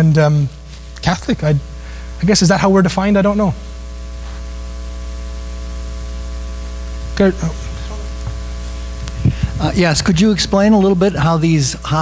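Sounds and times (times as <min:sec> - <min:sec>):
person speaking: 0:00.0 - 0:03.6, 0:07.0 - 0:12.0
electrical mains hum: 0:00.0 - 0:12.0.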